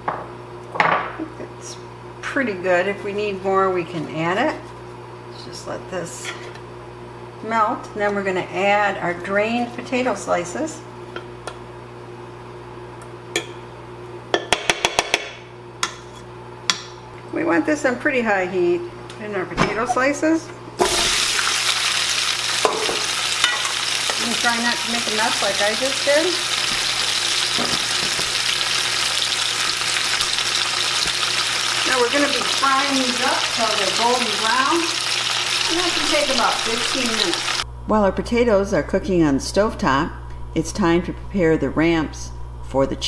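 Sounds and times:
potato slices sizzling in fat: 0:20.8 - 0:37.6
low steady hum: 0:31.5 - 0:43.0.

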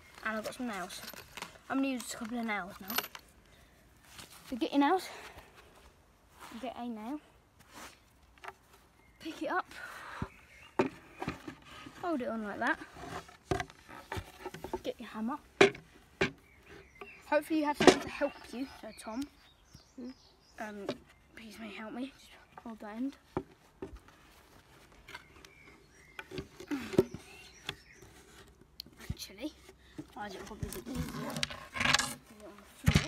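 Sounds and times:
wooden boards knocking together: 0:17.8 - 0:18.2.

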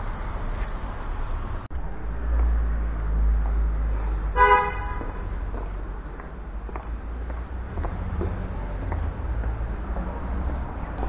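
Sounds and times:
low rumble: 0:01.2 - 0:04.4
vehicle horn toot: 0:04.4 - 0:05.2.

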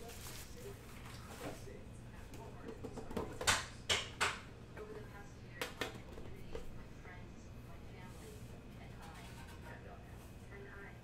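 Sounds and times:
low steady hum: 0:00.0 - 0:11.0
faint indistinct speech: 0:04.7 - 0:11.0.

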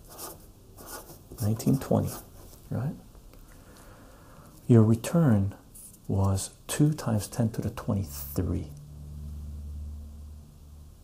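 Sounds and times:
low steady hum: 0:00.1 - 0:11.0.

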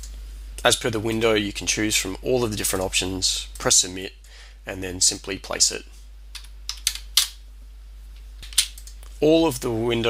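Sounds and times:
low steady hum: 0:00.0 - 0:10.0
keyboard and mouse clicks: 0:06.3 - 0:07.3.

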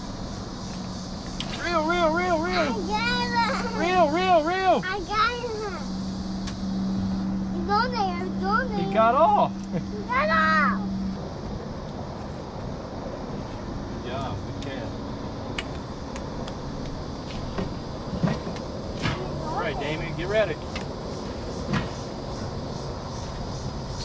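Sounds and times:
steady outdoor hiss: 0:00.0 - 0:24.0.

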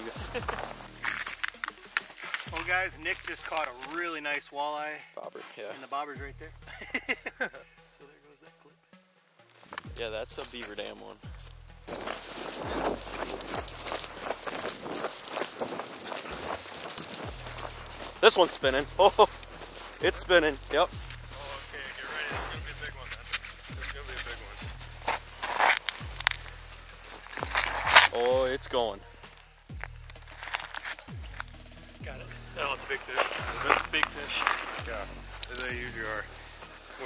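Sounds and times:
hands handling fishing line: 0:00.0 - 0:04.0, 0:11.4 - 0:21.3, 0:23.1 - 0:31.5, 0:32.6 - 0:37.0
footsteps crunching through snow: 0:00.0 - 0:04.2, 0:09.6 - 0:37.0.

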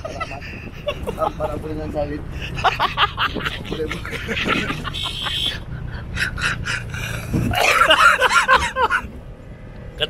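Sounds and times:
man laughing heartily: 0:00.0 - 0:01.7, 0:02.3 - 0:09.2.

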